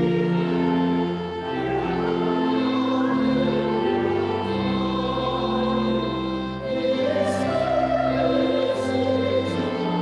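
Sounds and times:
church choir singing: 0:00.0 - 0:10.0
keyboard accompaniment: 0:00.0 - 0:10.0.

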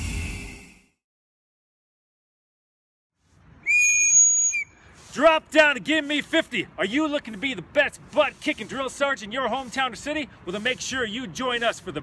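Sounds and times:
loud whistle blast: 0:03.6 - 0:04.8.

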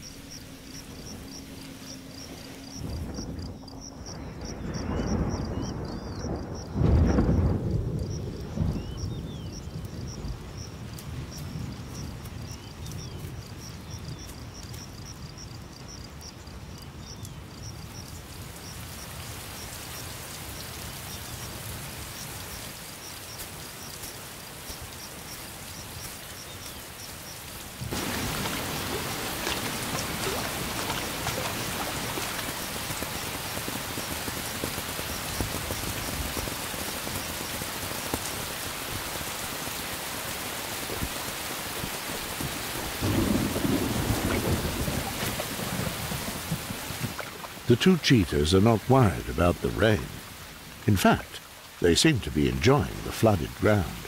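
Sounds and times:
thunder rumbling: 0:00.0 - 0:12.5, 0:27.8 - 0:38.0, 0:42.2 - 0:50.4
insects chirping: 0:00.0 - 0:48.4
heavy rain pouring: 0:00.0 - 0:54.0.

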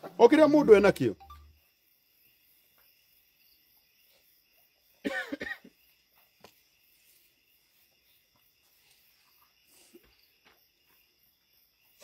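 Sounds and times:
person coughing: 0:05.0 - 0:05.8.

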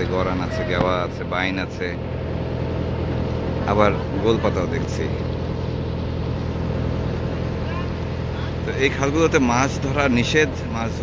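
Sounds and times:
boat engine humming: 0:00.0 - 0:11.0.

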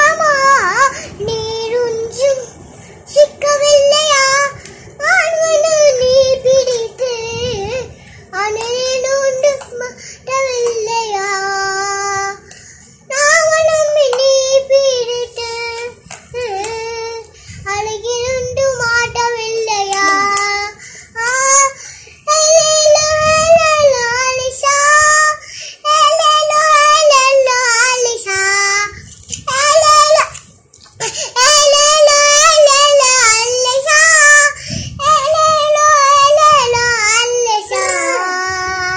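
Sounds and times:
girl singing unaccompanied: 0:00.0 - 0:38.9.

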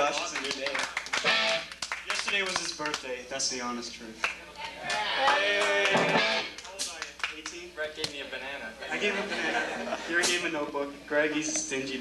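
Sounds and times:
electric guitar notes: 0:01.2 - 0:01.7, 0:05.9 - 0:06.6.

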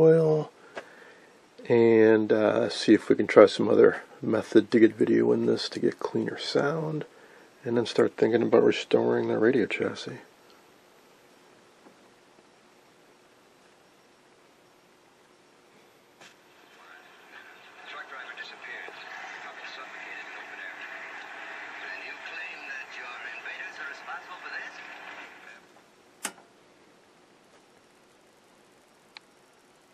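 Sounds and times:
voices from tv speaker: 0:16.6 - 0:25.7
television switch click: 0:26.2 - 0:26.5.

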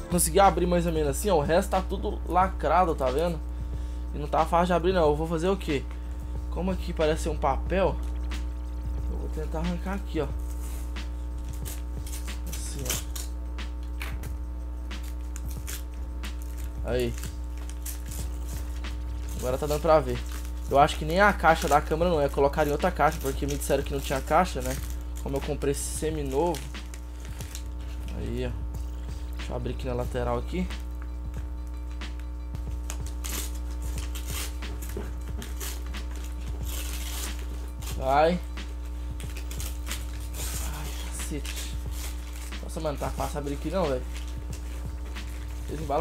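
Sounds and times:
background music: 0:00.0 - 0:46.0
paper tearing and crinkling: 0:09.4 - 0:14.3, 0:15.0 - 0:28.5, 0:32.1 - 0:46.0.

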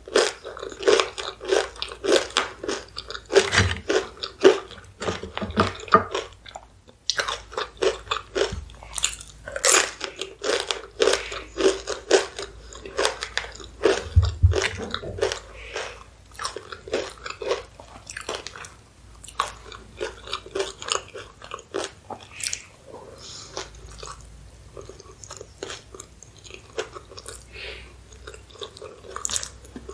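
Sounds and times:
crunching and chewing chips: 0:00.0 - 0:29.9.

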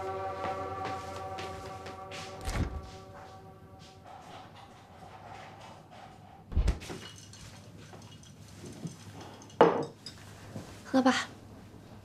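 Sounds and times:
glass clinking: 0:06.9 - 0:10.3.

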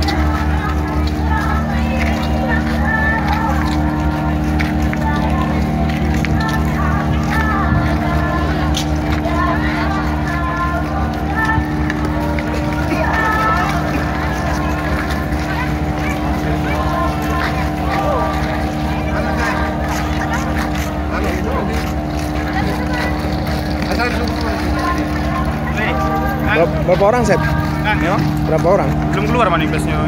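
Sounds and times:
crowd talking: 0:00.0 - 0:30.0
ship machinery drone: 0:00.0 - 0:30.0.

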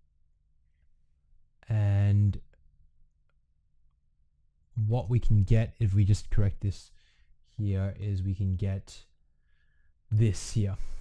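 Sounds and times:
man speaking: 0:01.6 - 0:02.4, 0:04.8 - 0:06.9, 0:07.6 - 0:09.1, 0:10.1 - 0:11.0.

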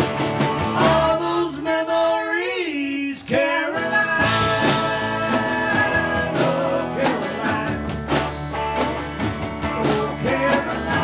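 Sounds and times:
live rock band playing: 0:00.0 - 0:01.6, 0:03.4 - 0:11.0
person singing: 0:00.7 - 0:08.0, 0:09.6 - 0:11.0
tambourine: 0:04.3 - 0:11.0.

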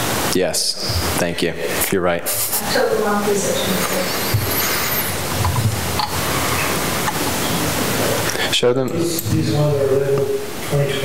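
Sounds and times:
steady background hiss: 0:00.0 - 0:11.0
person speaking: 0:00.4 - 0:06.9.

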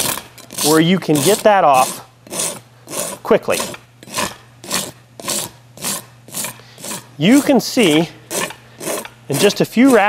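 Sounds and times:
rasp filing horse hoof: 0:00.0 - 0:10.0.

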